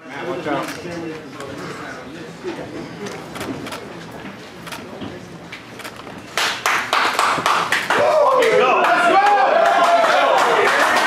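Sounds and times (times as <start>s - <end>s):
loud sharp hand claps: 6.4s - 11.0s.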